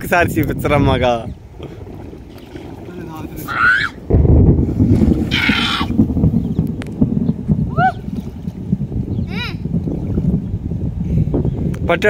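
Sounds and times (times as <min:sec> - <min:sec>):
wind rumble on microphone: 0:00.0 - 0:12.0
water sloshing and splashing: 0:01.4 - 0:07.0.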